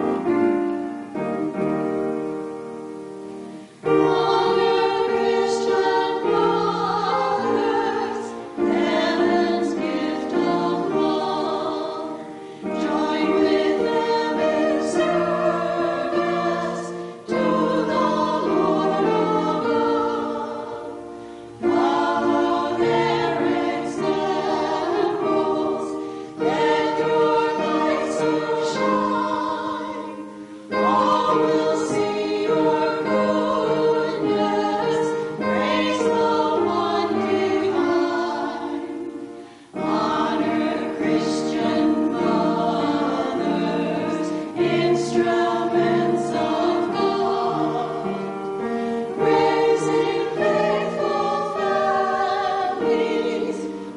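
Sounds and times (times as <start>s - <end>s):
women singing in harmony: 3.7s - 53.9s.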